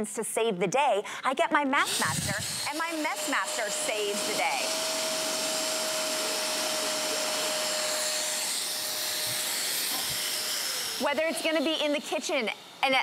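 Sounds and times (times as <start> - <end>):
wet dry vacuum running: 1.8 - 13.0.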